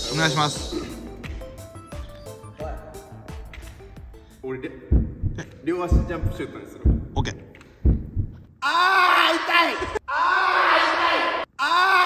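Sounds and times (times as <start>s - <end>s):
man talking: 0.0s - 1.2s, 4.4s - 7.6s
heartbeat double thumps: 4.9s - 8.4s.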